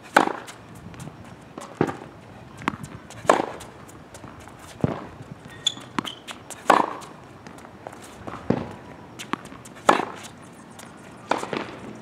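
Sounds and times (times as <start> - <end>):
tennis racket striking ball: 0.1 - 0.5, 2.6 - 3.7, 5.8 - 7.1, 8.5 - 10.3
tennis ball bouncing: 0.1 - 1.0, 1.6 - 12.0.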